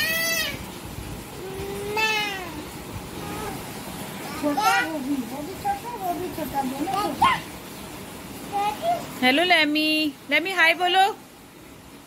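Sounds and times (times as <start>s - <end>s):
toddler squealing and babbling: 0.0s - 0.6s, 1.4s - 5.0s, 7.0s - 7.5s.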